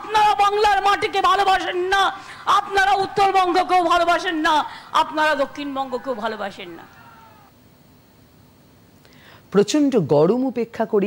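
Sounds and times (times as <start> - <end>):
woman speaking into microphone: 0.0 - 6.9
low background hush: 0.0 - 9.6.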